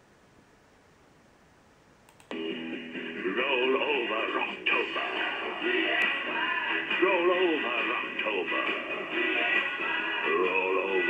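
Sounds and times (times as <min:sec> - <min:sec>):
radio jingle with sung melody: 0:02.4 - 0:11.0.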